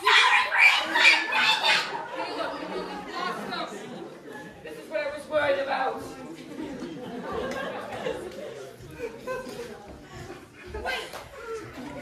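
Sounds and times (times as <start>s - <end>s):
indistinct voices in echoing hall: 0.0s - 12.0s.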